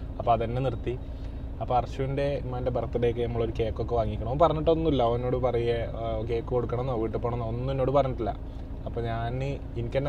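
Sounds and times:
low car hum: 0:00.0 - 0:10.0.

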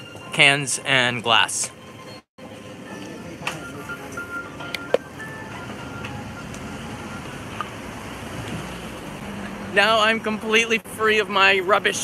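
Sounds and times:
simple electronic melody: 0:02.0 - 0:07.8.

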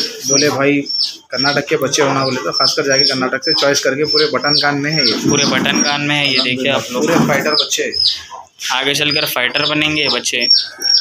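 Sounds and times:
background voices: 0:00.0 - 0:11.0
small birds chirping: 0:00.0 - 0:11.0.

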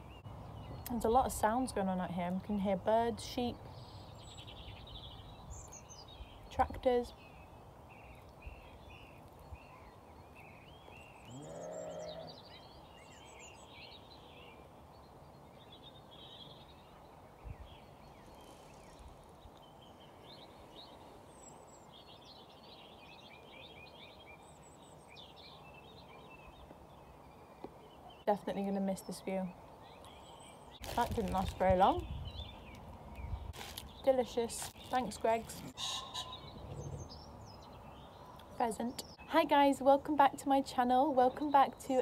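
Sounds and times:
small birds chirping: 0:00.0 - 0:42.0.

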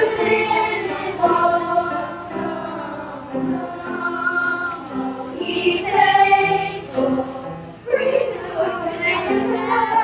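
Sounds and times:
children's choir singing: 0:00.0 - 0:10.0.

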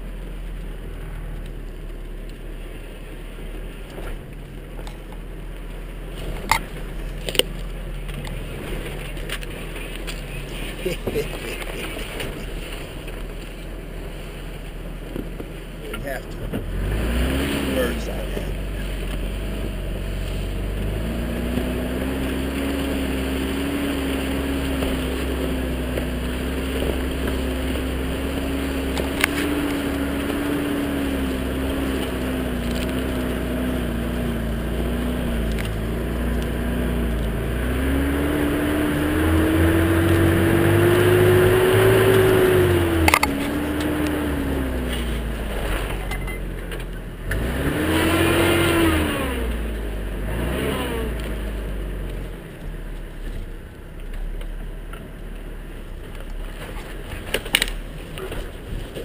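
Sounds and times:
pickup engine running: 0:00.0 - 0:59.0.

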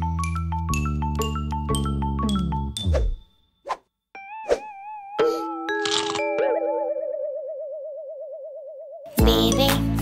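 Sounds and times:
warbling tone: 0:06.0 - 0:09.1
cartoon boing: 0:06.3 - 0:09.1.

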